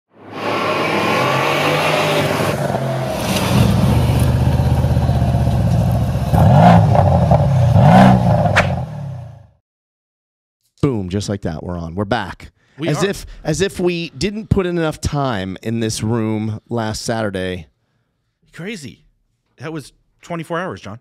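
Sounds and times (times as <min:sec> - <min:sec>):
car engine revving: 0:00.2 - 0:09.4.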